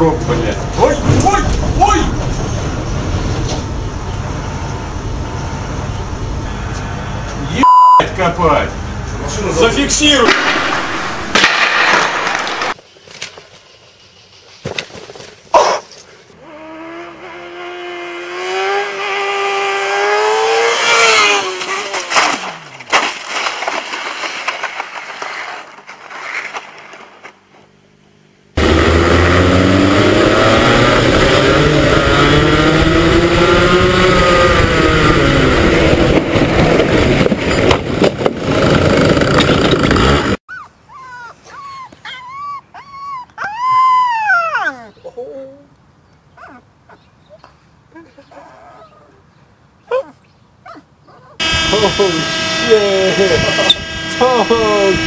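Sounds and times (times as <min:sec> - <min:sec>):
racing kart engines: 0:00.0 - 0:13.3, 0:16.3 - 0:23.0, 0:27.2 - 0:40.4, 0:51.4 - 0:55.0
puppy howling: 0:40.5 - 0:45.2
wavering steady-pitch tone: 0:51.4 - 0:55.0.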